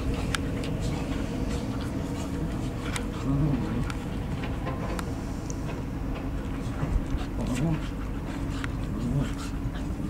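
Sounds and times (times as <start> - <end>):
dogs making wavering vocal noises: 0.0 - 4.7, 5.9 - 10.0.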